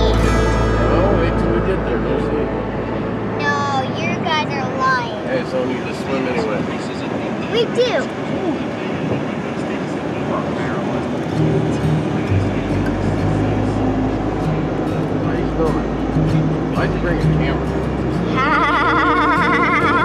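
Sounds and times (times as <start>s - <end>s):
background music with bass: 0.0s - 6.4s, 11.2s - 20.0s
car road and engine noise: 0.0s - 20.0s.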